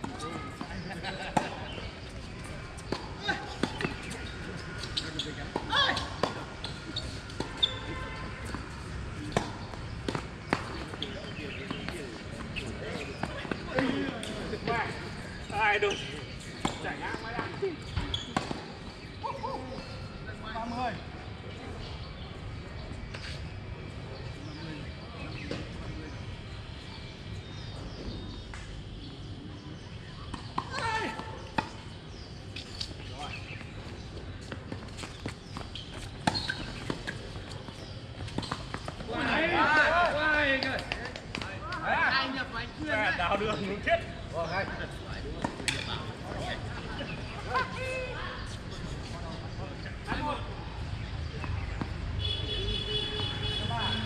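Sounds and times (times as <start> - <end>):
distant people talking: 0.0 - 32.4, 35.5 - 54.0
tennis balls struck and bouncing: 2.8 - 7.7, 8.4 - 14.5, 34.4 - 39.4, 45.4 - 45.9.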